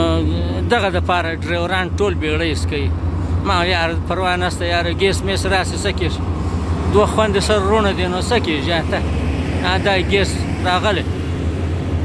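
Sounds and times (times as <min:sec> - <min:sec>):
low engine drone: 0:00.0 - 0:12.0.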